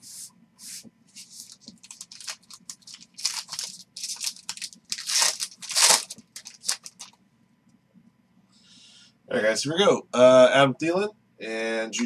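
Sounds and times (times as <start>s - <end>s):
foil wrapper crinkling rips: 1.2s - 7.2s.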